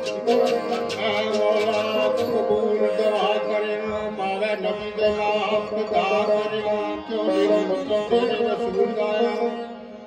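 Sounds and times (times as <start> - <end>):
harmonium drone: 0.0 - 10.0
sitar: 0.0 - 10.0
tabla: 0.0 - 10.0.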